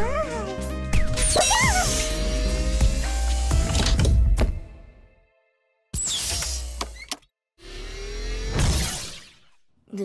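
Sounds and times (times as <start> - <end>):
cartoon machine whirring and creaking: 1.1 - 3.1, 6.0 - 9.6.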